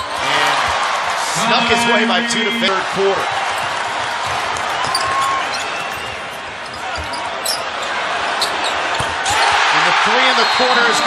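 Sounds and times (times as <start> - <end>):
arena crowd noise: 0.0 - 11.0
sneaker squeaks: 3.5 - 9.6.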